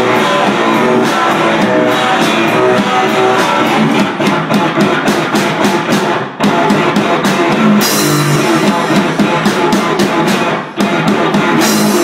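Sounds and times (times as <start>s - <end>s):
drum or cymbal hits: 0.0s - 12.0s
electric guitar: 0.0s - 12.0s
live rock band playing: 0.0s - 12.0s.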